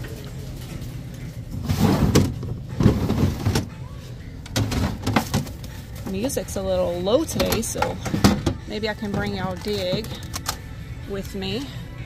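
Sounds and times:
items rummaged in plastic bin: 0.0s - 3.8s, 4.4s - 11.6s.

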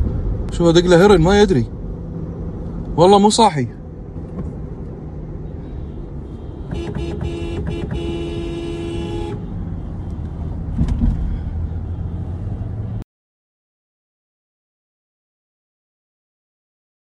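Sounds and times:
road and engine rumble: 0.0s - 13.1s
car horn honking: 5.5s - 10.0s.

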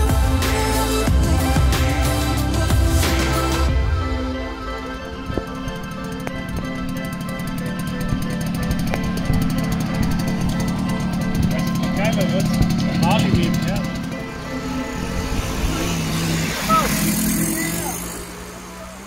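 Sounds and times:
background music: 0.0s - 19.0s
two-stroke moped engine running: 0.0s - 19.0s
voices calling out: 9.4s - 19.0s.

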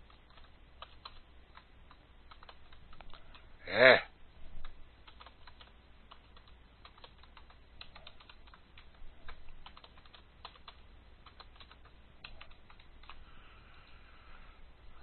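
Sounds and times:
keyboard typing: 0.0s - 3.5s, 4.6s - 14.0s
low steady hum: 0.0s - 15.0s.

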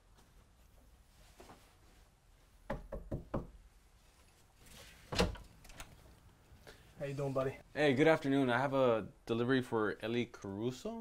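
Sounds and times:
knocking on a door: 2.7s - 3.6s.

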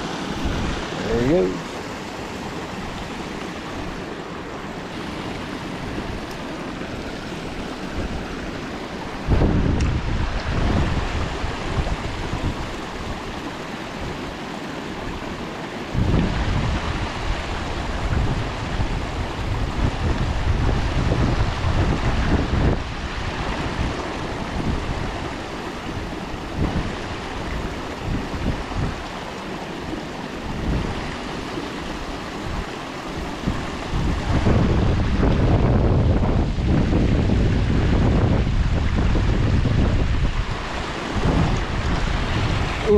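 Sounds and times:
wind buffeting microphone: 0.0s - 14.4s, 15.9s - 29.2s, 29.8s - 42.9s
water rushing over rocks: 0.0s - 42.9s.

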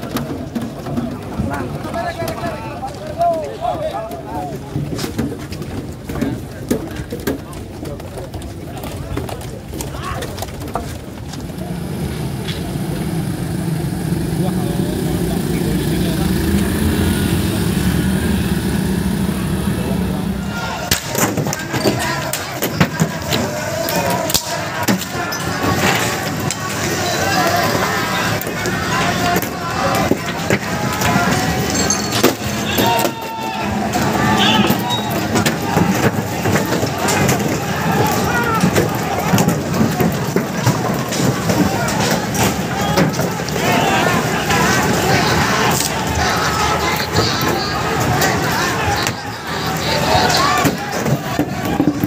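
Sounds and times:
crowd shouting: 0.0s - 7.2s, 8.8s - 52.0s.

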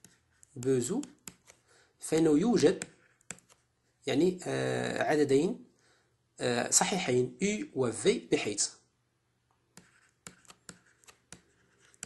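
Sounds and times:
pen scratching on paper: 0.0s - 3.7s, 9.8s - 12.0s.

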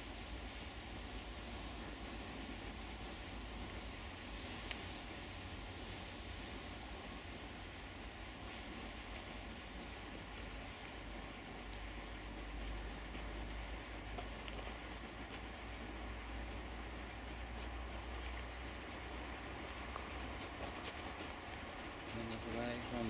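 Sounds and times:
outdoor background hiss: 0.0s - 23.0s
faint ticks: 3.7s - 5.3s, 6.4s - 23.0s.

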